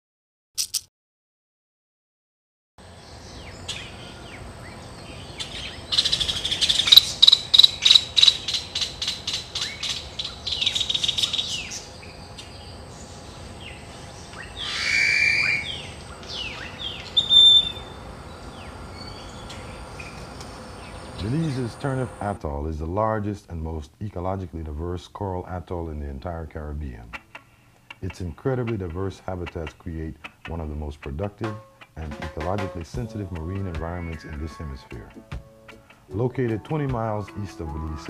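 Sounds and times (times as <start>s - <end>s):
birds chirping: 2.8s - 22.6s, 26.8s - 38.0s
faint steady hiss: 2.9s - 38.0s.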